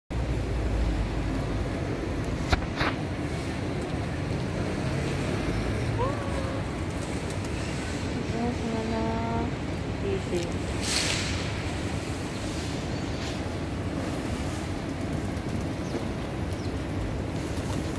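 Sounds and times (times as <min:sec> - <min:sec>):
low traffic rumble: 0:00.1 - 0:17.9.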